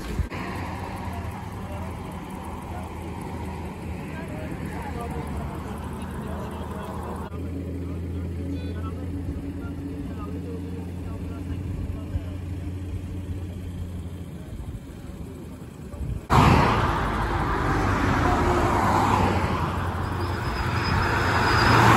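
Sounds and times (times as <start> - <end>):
low vehicle engine hum: 0.0 - 21.9
road and wind noise from car: 0.0 - 21.9.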